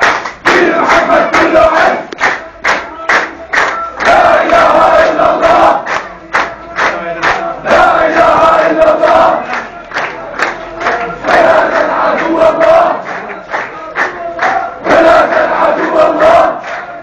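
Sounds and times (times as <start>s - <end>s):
crowd chanting slogans: 0.0s - 17.0s.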